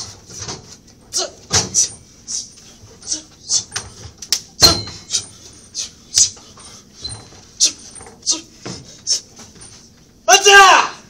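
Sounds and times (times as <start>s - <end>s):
sharp hissing breaths: 5.1s - 9.4s.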